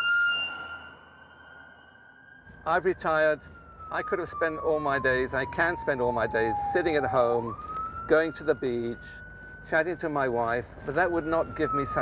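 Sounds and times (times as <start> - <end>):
ambulance siren: 0.0 - 12.0.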